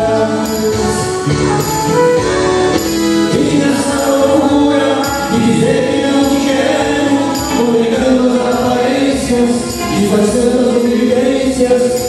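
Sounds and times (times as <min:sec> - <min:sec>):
band playing live: 0:00.0 - 0:12.0
tambourine: 0:00.0 - 0:12.0.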